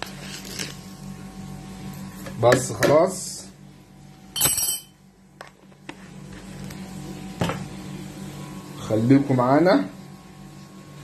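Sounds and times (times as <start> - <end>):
steady low hum: 0.0 - 11.0
kitchenware clinking: 4.4 - 5.0.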